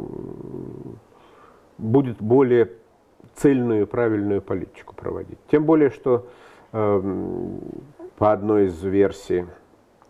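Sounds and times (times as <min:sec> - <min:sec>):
man speaking: 0:01.8 - 0:09.6.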